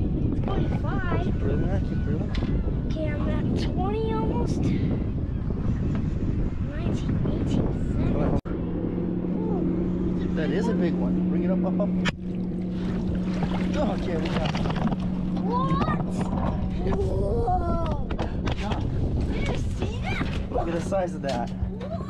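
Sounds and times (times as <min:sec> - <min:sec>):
outboard motor idling: 0:08.6 - 0:17.1.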